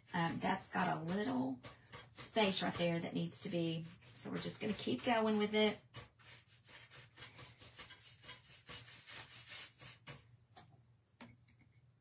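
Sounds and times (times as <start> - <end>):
paintbrush strokes scratching: 0.0 - 10.3.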